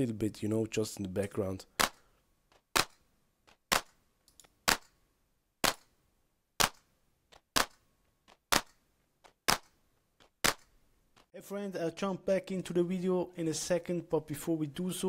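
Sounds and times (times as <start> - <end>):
electronic drum-machine clap: 10.4 - 10.6.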